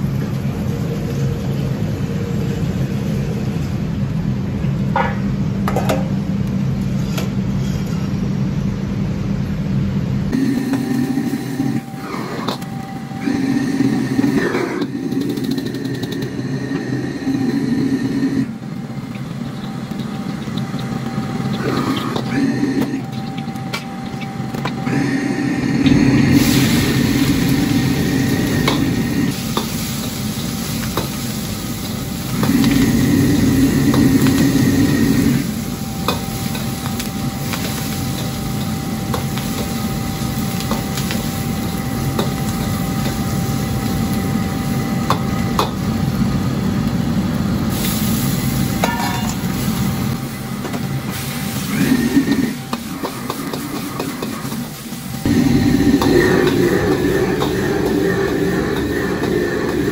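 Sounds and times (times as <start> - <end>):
gas burner flame roaring: 0.0 - 59.9
food sizzling in a wok: 10.3 - 59.9.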